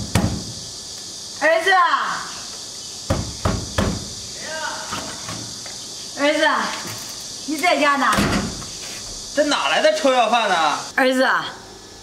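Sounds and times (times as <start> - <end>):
knocking on a door: 3.1 - 4.1.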